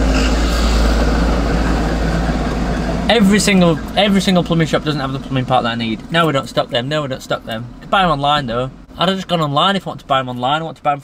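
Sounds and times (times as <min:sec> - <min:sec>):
diesel truck engine rumbling: 0:00.0 - 0:11.0.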